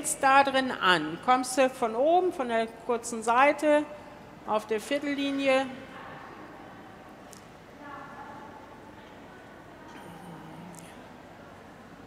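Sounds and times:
indoor hall background noise: 0.0 - 12.0
faint distant voices: 5.6 - 12.0.

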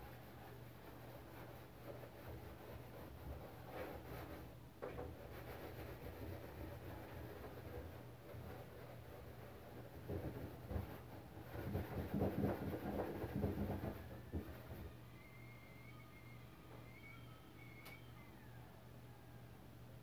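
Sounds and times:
thin wavering squeak: 14.2 - 19.3
click: 17.8 - 18.0.

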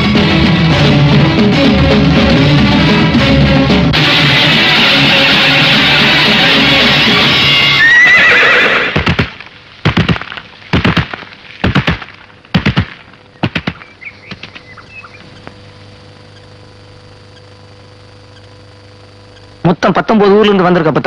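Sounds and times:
heavy hoofbeats: 0.0 - 15.3
horse whinnying: 7.7 - 9.0
low steady hum: 9.0 - 21.0.

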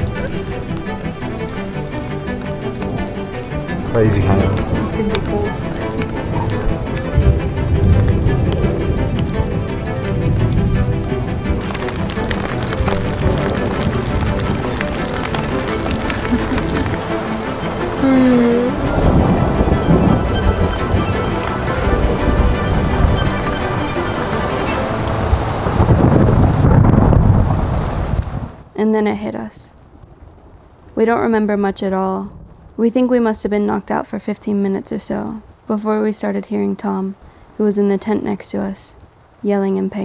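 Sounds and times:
background music: 0.0 - 26.7
low thunder rumbles: 0.0 - 28.7, 29.8 - 34.0
rain on a tent: 0.0 - 28.8, 29.7 - 31.5, 32.2 - 32.9, 35.4 - 35.7, 37.1 - 37.6, 38.9 - 40.0.

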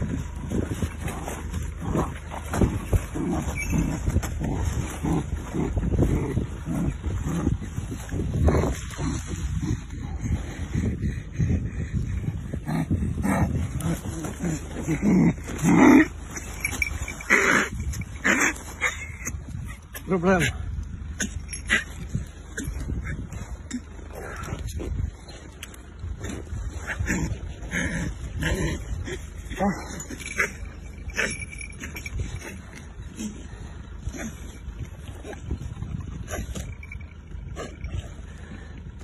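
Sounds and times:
rustling and handling noise: 0.0 - 10.6, 13.5 - 39.0
animal growling: 0.0 - 39.0.

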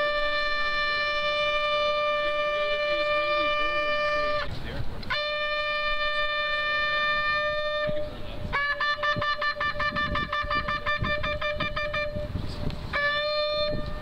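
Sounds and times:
shofar blasts: 0.0 - 4.5, 5.1 - 14.0.

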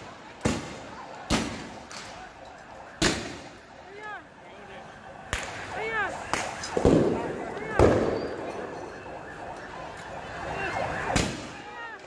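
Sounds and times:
people shouting: 10.4 - 12.0.

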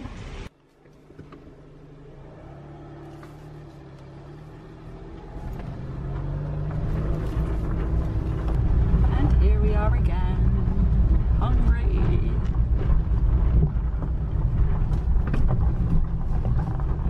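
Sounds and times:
car engine and tyre rumble: 0.0 - 17.0
gravel crunching: 0.0 - 17.0.

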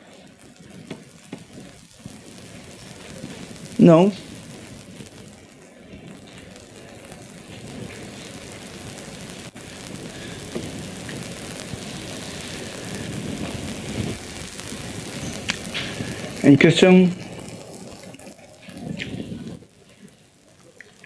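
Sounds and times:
room noise hiss: 0.0 - 21.0.

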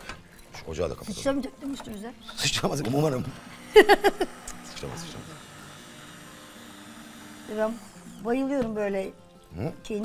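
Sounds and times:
stick blender running: 2.4 - 8.8.

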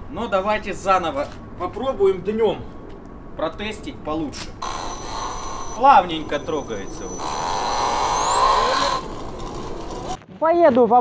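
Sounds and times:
electric motor whine rising: 4.6 - 10.2.

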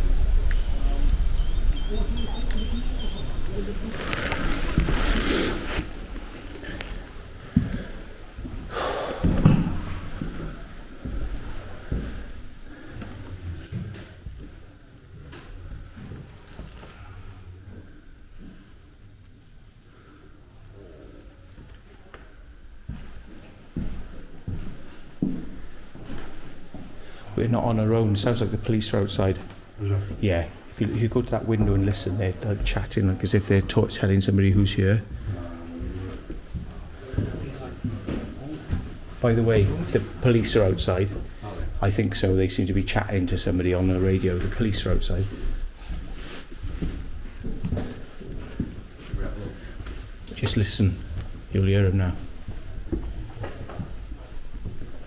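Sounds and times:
bird chirps: 0.0 - 4.1.

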